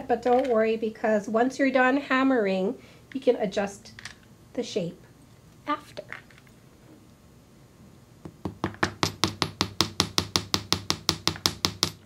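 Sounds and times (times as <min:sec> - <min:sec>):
hammer tapping metal wire: 0:08.3 - 0:12.0.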